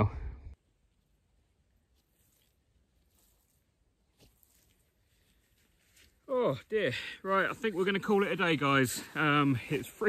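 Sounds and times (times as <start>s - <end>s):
soft steps through grass: 0.9s - 10.0s.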